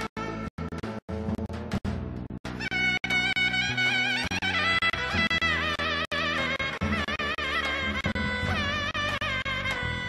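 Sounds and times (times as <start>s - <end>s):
instrumental folk music: 0.0s - 10.0s
wavering woodwind melody: 2.6s - 10.0s.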